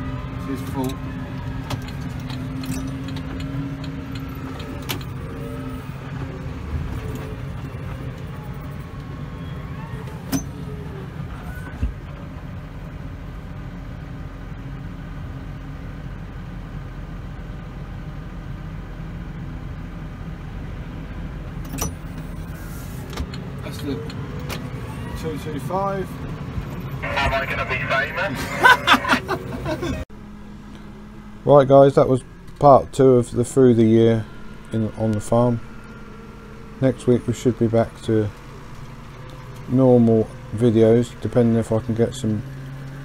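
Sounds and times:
tractor engine droning: 26.8s - 43.0s.

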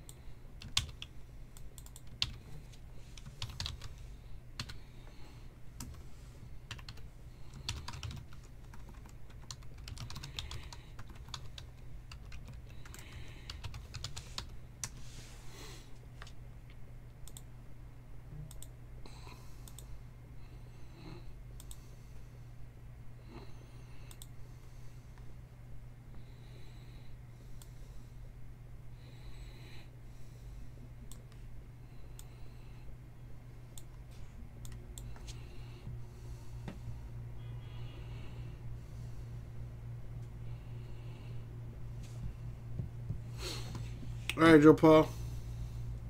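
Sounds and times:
computer keyboard typing: 0.0s - 4.0s, 4.6s - 4.8s, 6.7s - 15.0s
steady low hum: 0.0s - 46.0s.

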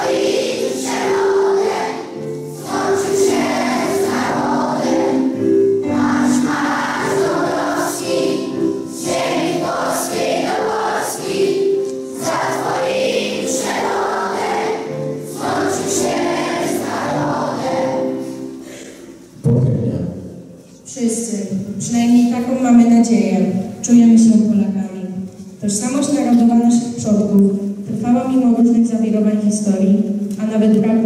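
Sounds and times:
children singing in unison: 0.0s - 18.7s.

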